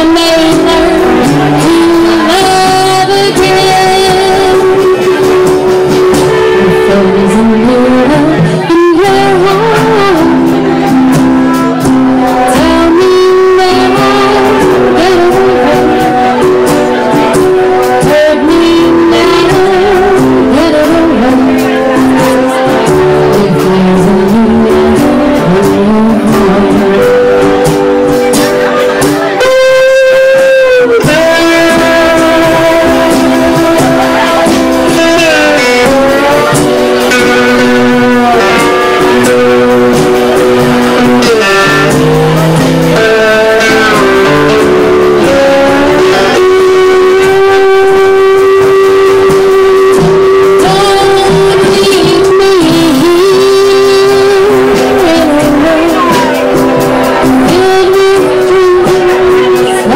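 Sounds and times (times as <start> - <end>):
drums: 0.0 - 59.9
live band playing loud music: 0.0 - 59.9.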